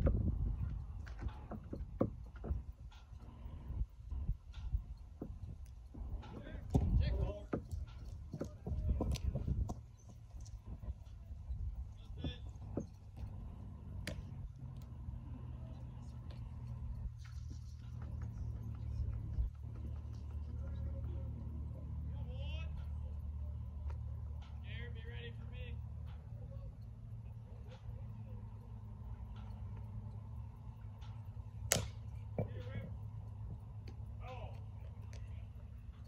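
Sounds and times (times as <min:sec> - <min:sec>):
low rumble: 0:00.0 - 0:01.5
indistinct distant voices: 0:00.0 - 0:36.0.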